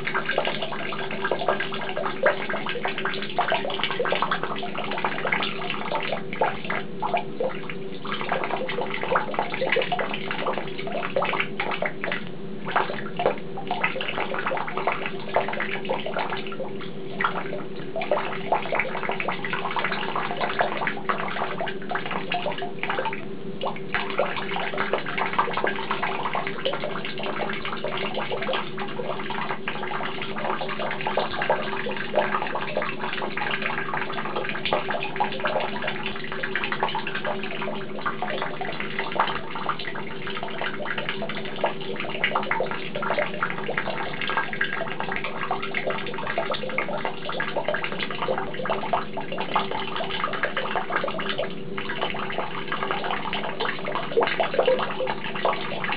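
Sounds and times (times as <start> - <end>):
tap water pouring into bucket: 0.0 - 55.9.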